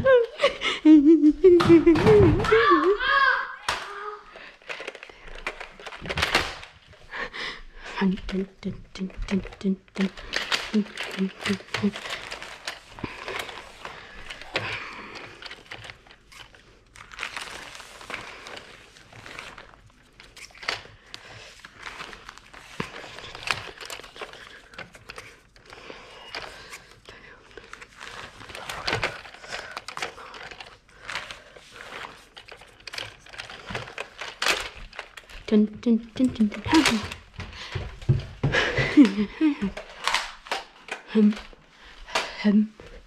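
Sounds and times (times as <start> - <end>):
rustling and crinkling handling: 1.2 - 43.0.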